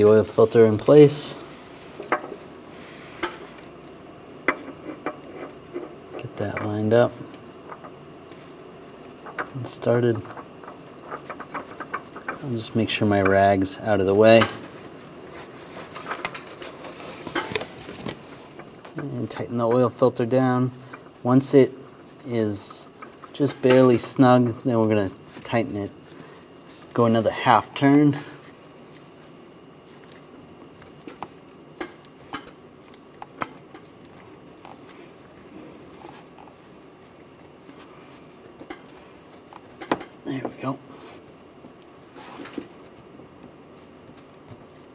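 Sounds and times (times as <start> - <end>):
oil filter clicking and rubbing: 10.3 - 12.5.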